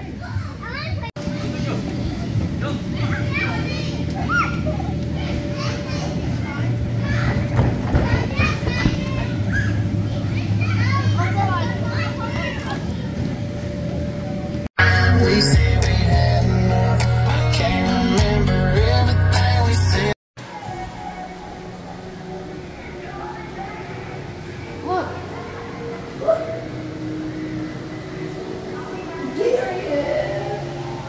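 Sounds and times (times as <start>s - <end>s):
children shouting and calling out: 3.1s - 7.5s.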